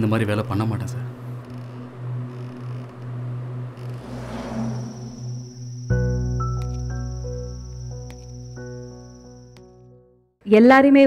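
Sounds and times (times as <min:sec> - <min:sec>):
low wavering hum: 0:00.0 - 0:09.5
rising whoosh: 0:03.7 - 0:06.3.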